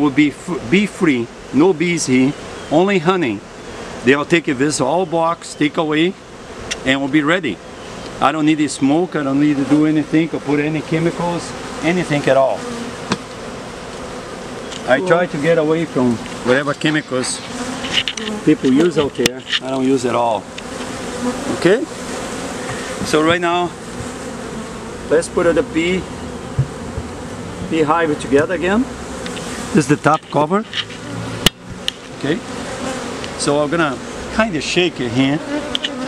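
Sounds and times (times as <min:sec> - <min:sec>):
bees buzzing: 0:00.0 - 0:36.0.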